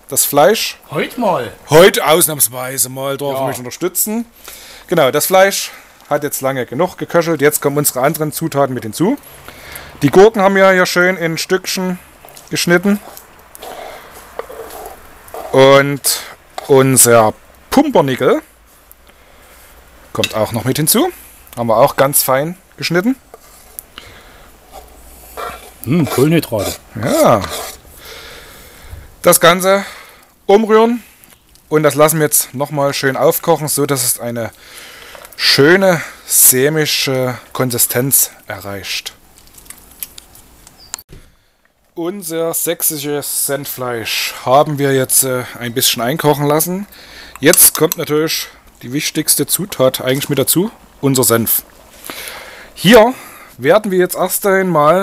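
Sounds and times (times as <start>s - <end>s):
broth simmering: 0.0s - 42.0s, 42.8s - 55.0s
faint steady background: 0.0s - 55.0s
wooden spoon stirring stew: 11.6s - 28.0s, 34.8s - 35.8s, 46.3s - 50.6s
pieces sliding and dropping: 12.2s - 15.7s
spoon scraping cutting board: 12.2s - 17.0s, 23.3s - 24.0s, 24.6s - 27.9s.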